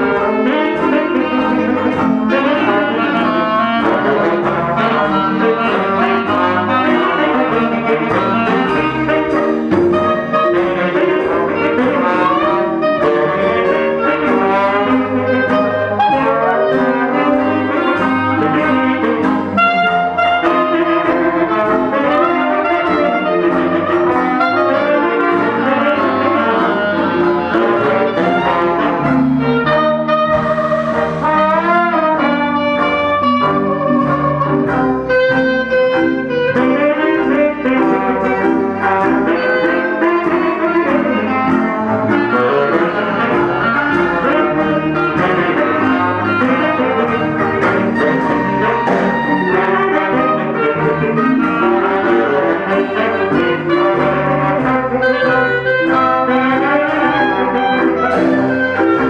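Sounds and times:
jazz band playing: 0.0 - 59.0.

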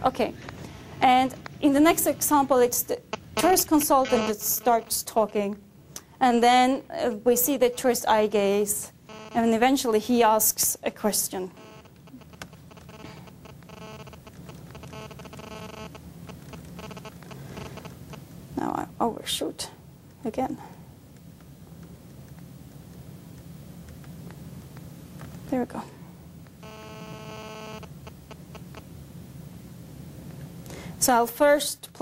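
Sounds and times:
low mains hum: 0.0 - 32.0
buzzy stuttering scrubbed speech audio: 1.0 - 5.6, 6.2 - 11.6
electronic tone: 3.1 - 5.0, 9.1 - 9.5, 11.6 - 18.2, 26.6 - 28.8.

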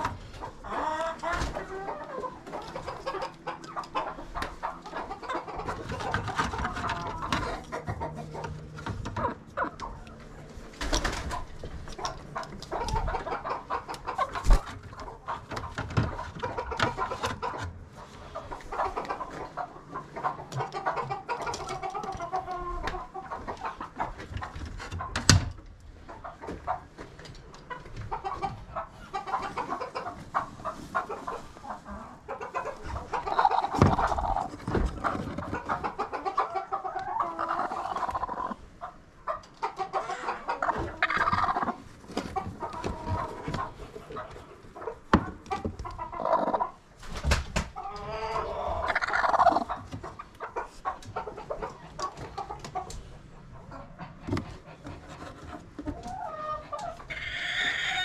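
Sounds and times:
hens clucking and squawking: 0.0 - 58.0.

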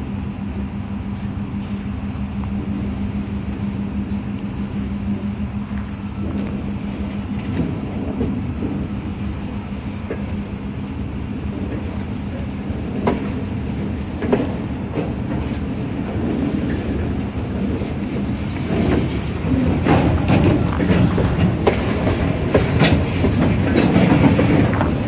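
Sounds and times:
diesel locomotive humming: 0.0 - 25.0
rail cars clanking: 0.0 - 25.0.

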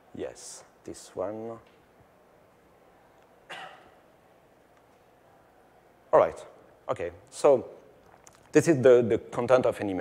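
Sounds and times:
man coughing: 3.5 - 4.0.

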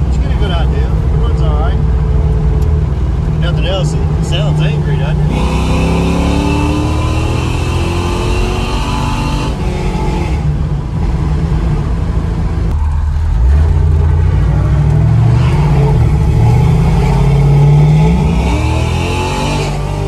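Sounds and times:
car engine revving: 0.0 - 20.0.

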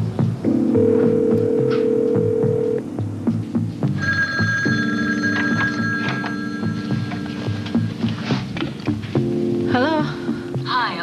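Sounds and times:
desk telephone ringing: 0.8 - 2.8, 4.0 - 7.3.

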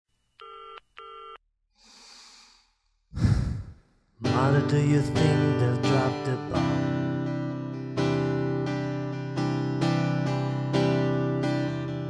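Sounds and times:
deep burst: 3.2 - 3.8.

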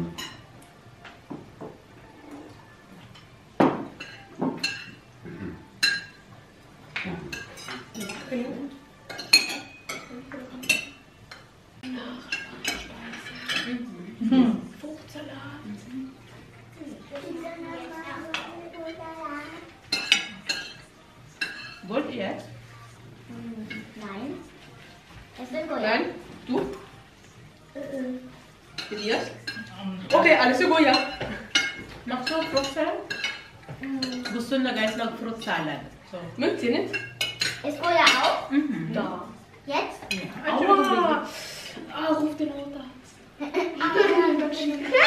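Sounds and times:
cutlery clinking on ceramic plates: 0.0 - 5.1, 5.7 - 11.6, 12.3 - 13.9, 19.6 - 22.5, 28.7 - 35.7, 36.8 - 38.5.

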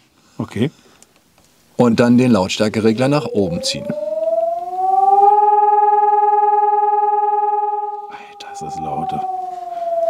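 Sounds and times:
warning siren wail: 2.9 - 10.0.

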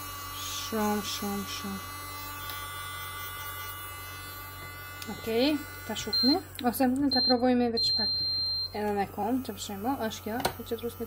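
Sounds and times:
nail drill motor whine: 0.0 - 11.0.

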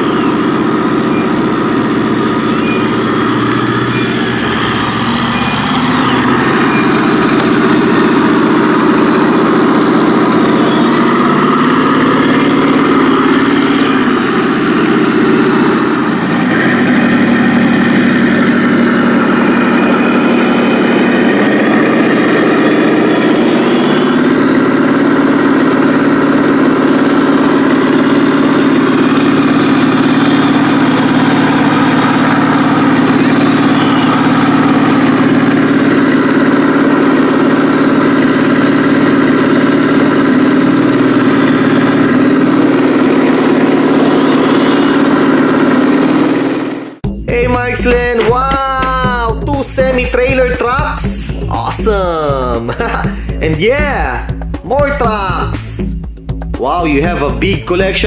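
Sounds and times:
simulated tank engine drone: 0.0 - 58.0.

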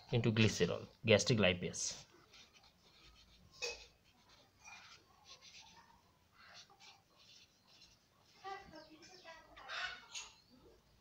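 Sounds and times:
marker scratching on paper: 1.9 - 8.7.

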